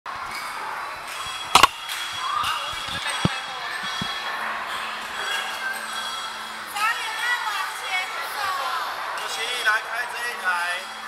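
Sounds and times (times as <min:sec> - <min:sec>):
hubbub of voices in a hall: 0:00.1 - 0:01.5, 0:02.2 - 0:11.0.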